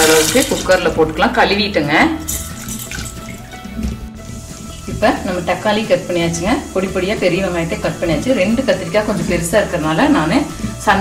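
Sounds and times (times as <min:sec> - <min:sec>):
peas splashing into water: 0:00.0 - 0:01.2, 0:02.3 - 0:03.6
quiet background music: 0:00.0 - 0:11.0.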